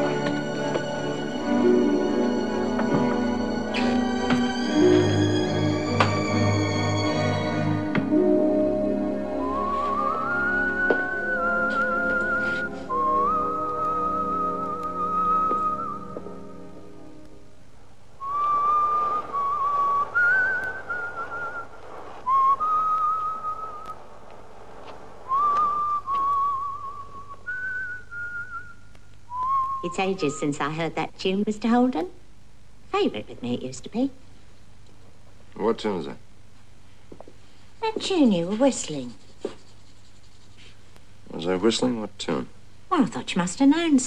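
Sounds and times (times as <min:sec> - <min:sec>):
television soundtrack hum and hiss: 0:00.0 - 0:44.0
man whistling a melody: 0:09.3 - 0:16.6, 0:18.2 - 0:24.0, 0:25.3 - 0:30.4.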